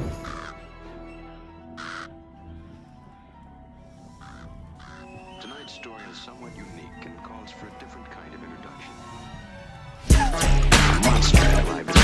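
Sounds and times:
crow cawing: 0.0s - 2.2s, 4.0s - 5.4s
music with low held tones: 0.0s - 12.0s.

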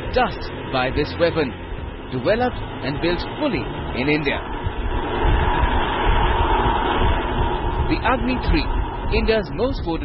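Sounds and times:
rocket motor roaring: 0.0s - 10.0s.

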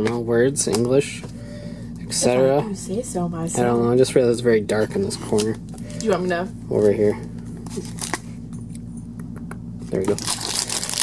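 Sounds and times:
steady low hum: 0.0s - 11.0s
foil pack handling clicks: 5.2s - 6.1s, 9.9s - 11.0s.

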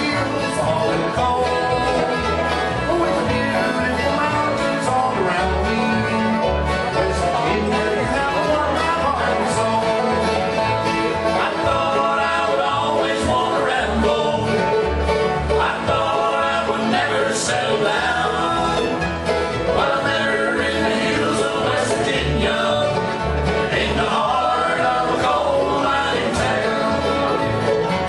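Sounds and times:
acoustic guitars picking: 0.0s - 28.0s
banjo picking: 0.0s - 28.0s
bluegrass band playing: 0.0s - 28.0s
upright bass plucking: 0.0s - 28.0s.

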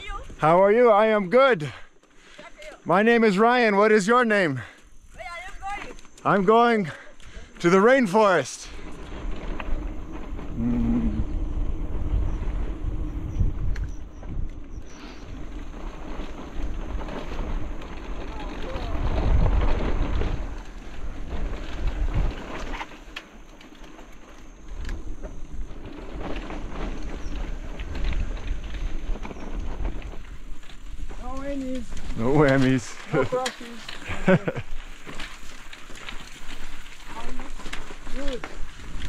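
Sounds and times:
bike rattling over bumps: 0.0s - 39.0s
tyres crackling over dirt: 0.0s - 39.0s
wind on microphone: 8.8s - 22.8s
person calling out: 10.6s - 11.2s.

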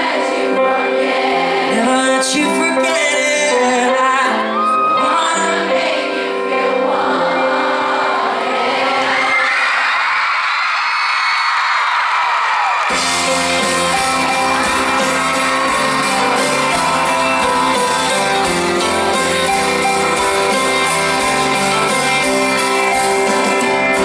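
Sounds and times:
crowd cheering and screaming: 4.2s - 24.0s
live band music: 12.8s - 24.0s.

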